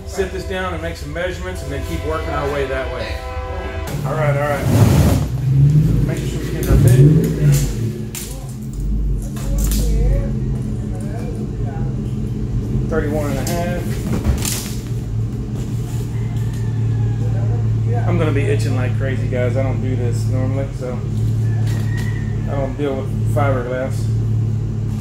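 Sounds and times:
low electric hum: 0:00.0 - 0:25.0.

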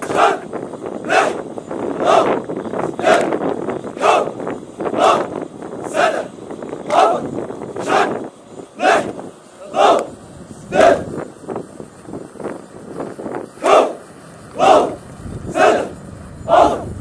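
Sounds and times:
soldiers chanting in unison: 0:00.0 - 0:11.2, 0:13.6 - 0:17.0.

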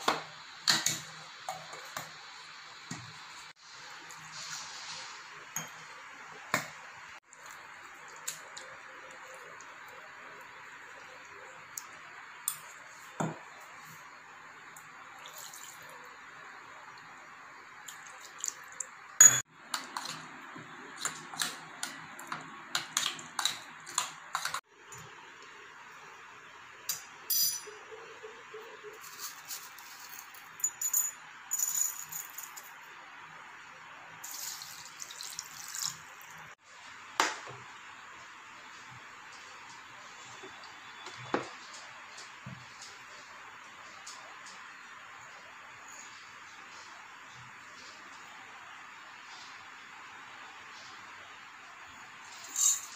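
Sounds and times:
water mixed by hand: 0:17.8 - 0:19.0.

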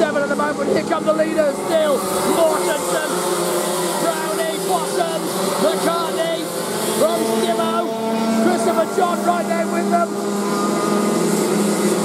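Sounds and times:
kart engines racing: 0:00.0 - 0:12.0.

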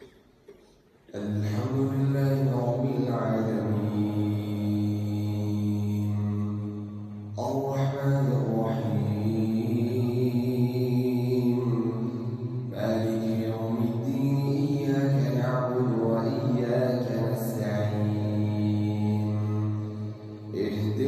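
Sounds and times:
man chanting into a microphone: 0:01.1 - 0:21.0.

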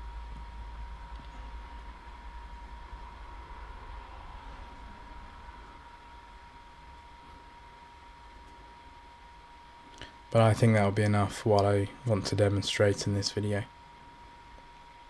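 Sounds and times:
low hum: 0:00.0 - 0:15.0
thin steady whine: 0:00.0 - 0:15.0.

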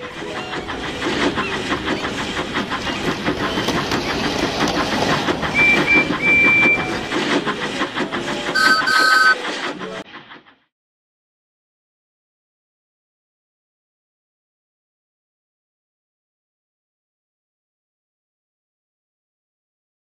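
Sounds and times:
steam locomotive chuffing: 0:00.0 - 0:10.7
high train whistle toots: 0:05.6 - 0:07.1, 0:08.5 - 0:09.5.

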